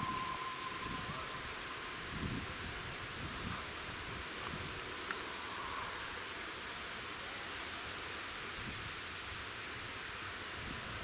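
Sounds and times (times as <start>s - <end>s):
steam whistle: 0.0s - 2.5s
steam locomotive approaching: 0.0s - 8.6s
steady outdoor hiss: 0.0s - 11.0s.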